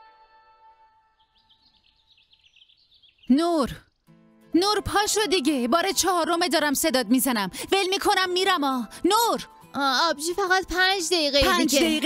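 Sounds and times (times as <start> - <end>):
faint birds chirping: 1.0 - 4.8.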